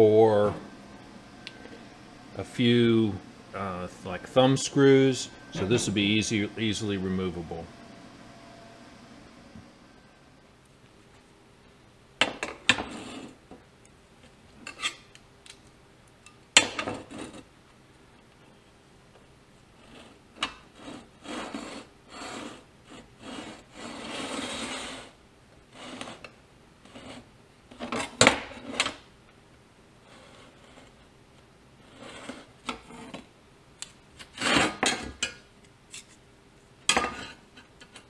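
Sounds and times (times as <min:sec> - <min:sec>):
scribe scraping on steel: 0:14.6 - 0:15.2, 0:19.8 - 0:27.3, 0:31.9 - 0:33.2.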